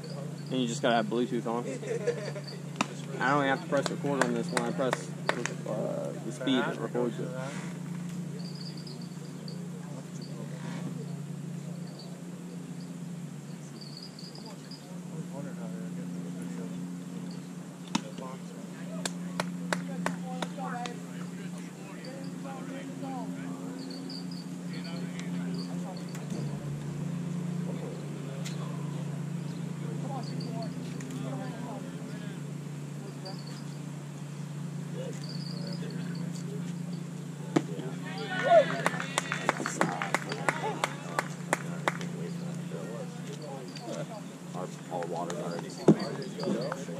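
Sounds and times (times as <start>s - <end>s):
distant voices: 0.0s - 46.9s
steady low hum: 0.0s - 46.9s
quick run of clicks: 2.8s - 5.7s
crowd shouting: 38.0s - 41.2s.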